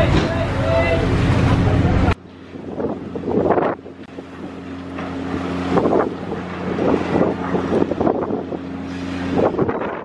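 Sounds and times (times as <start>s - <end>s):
ferry engine idling hum: 0.0s - 10.0s
wind buffeting microphone: 0.0s - 10.0s.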